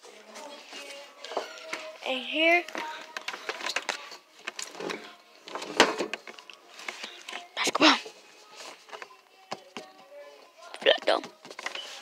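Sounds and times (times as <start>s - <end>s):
rustling and handling noise: 0.0s - 10.0s, 10.6s - 12.0s.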